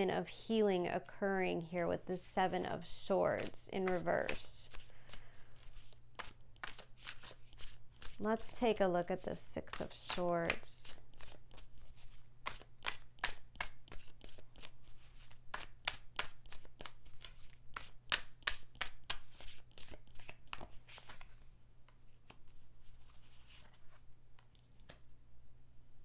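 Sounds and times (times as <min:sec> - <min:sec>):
cards being shuffled: 0:03.4 - 0:08.6, 0:09.7 - 0:25.1.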